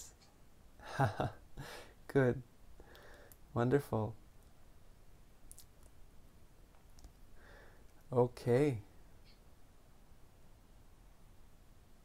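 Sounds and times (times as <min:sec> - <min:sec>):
faint clicks: 0:06.7 - 0:07.2.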